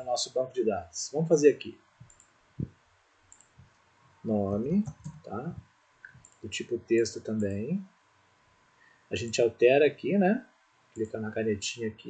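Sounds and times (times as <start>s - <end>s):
computer mouse clicks: 2.0s - 2.7s, 3.3s - 3.8s, 4.8s - 5.3s, 6.0s - 6.4s.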